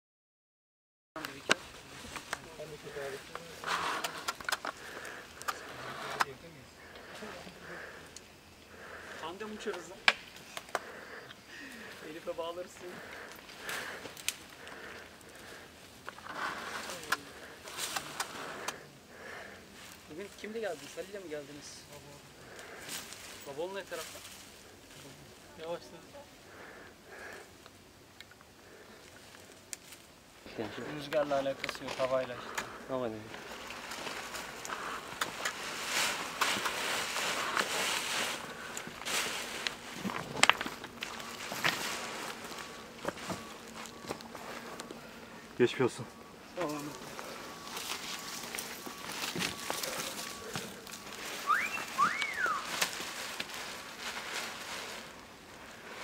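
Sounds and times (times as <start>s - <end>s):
rustling of dry scrub: 8.7s - 27.5s, 28.6s - 56.0s
twigs snapping: 13.0s - 15.5s, 37.4s - 44.9s, 46.6s - 55.7s.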